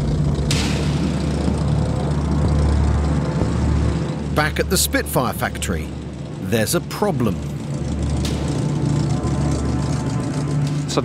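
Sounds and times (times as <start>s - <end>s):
piston aircraft engine drone: 0.0s - 11.0s.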